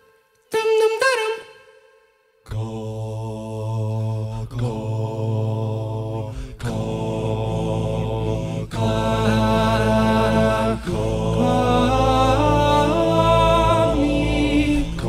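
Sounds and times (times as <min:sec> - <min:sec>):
male a cappella group singing chords: 0:02.4 - 0:15.0.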